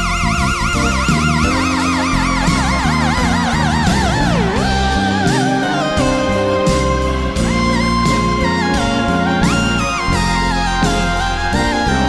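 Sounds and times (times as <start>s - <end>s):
lead guitar note with vibrato: 0.0s - 12.0s
slow blues band: 0.0s - 12.0s.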